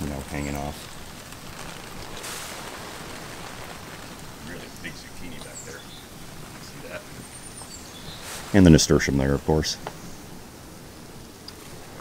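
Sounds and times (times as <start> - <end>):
sprinkler water pattering on foliage: 0.0 - 12.0.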